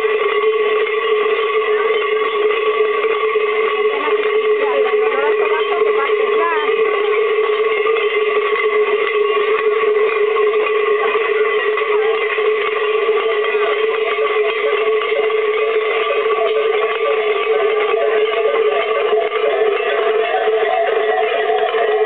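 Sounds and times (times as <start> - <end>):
cowbells clanging: 0.0 - 22.0.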